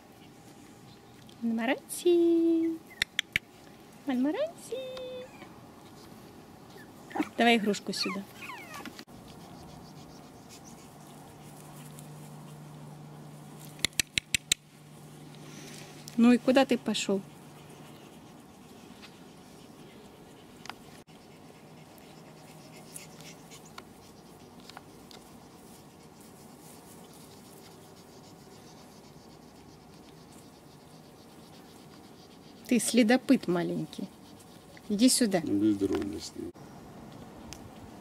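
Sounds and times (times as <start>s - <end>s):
quick sharp clicks: 3.0s - 3.5s, 13.8s - 14.6s
puppy rustling through plants: 3.5s - 13.9s, 14.7s - 36.5s.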